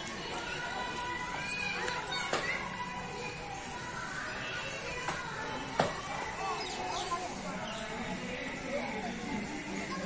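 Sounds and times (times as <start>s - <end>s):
distant voices chattering: 0.0s - 10.0s.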